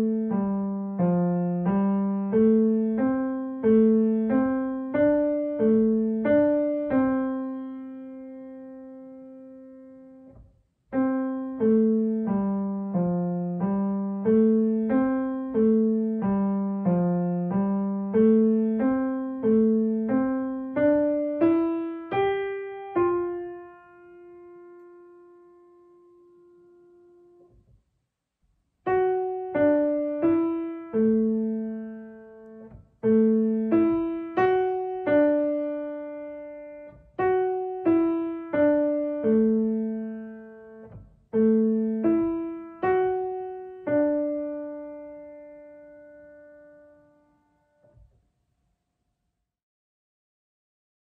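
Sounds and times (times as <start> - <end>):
soft thump of piano keys: 10.2 - 11.1, 32.4 - 35.6, 36.8 - 39.6, 40.7 - 43.3.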